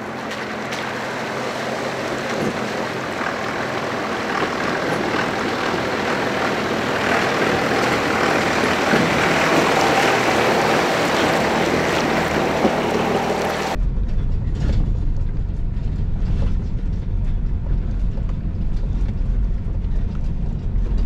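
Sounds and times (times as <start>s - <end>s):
pickup truck engine running: 0.0s - 14.4s
water splashing around tyres: 0.2s - 13.8s.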